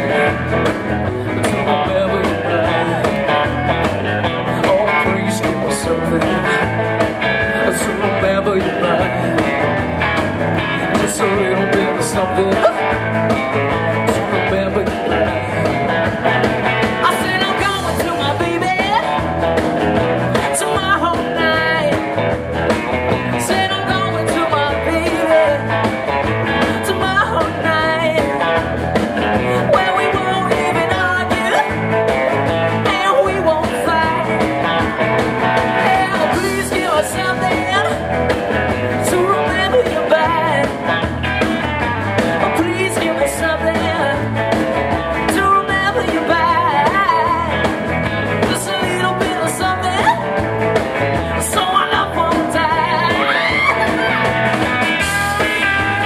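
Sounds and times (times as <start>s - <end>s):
man singing: 0.0s - 22.4s, 23.0s - 41.3s, 42.2s - 56.0s
drum kit steady beat: 0.0s - 56.0s
electric guitars: 0.0s - 56.0s.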